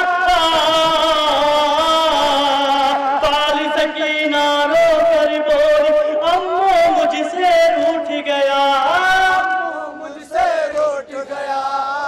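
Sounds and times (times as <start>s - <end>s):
man chanting a lament: 0.0s - 12.0s.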